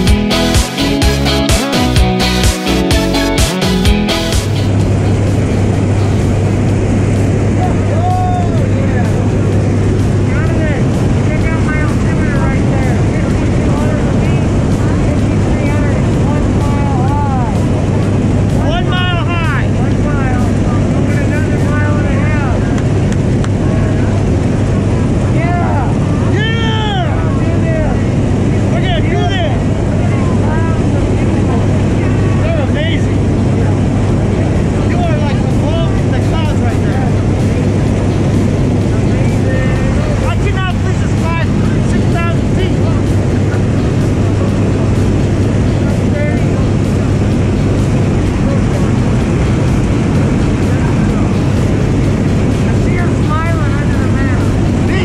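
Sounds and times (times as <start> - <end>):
propeller plane engine drone: 0.0 - 55.0.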